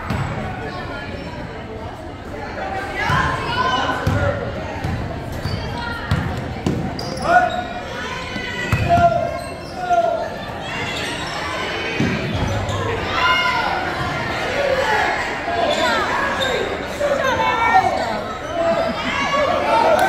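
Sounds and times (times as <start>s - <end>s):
voices shouting: 7.0s - 20.0s.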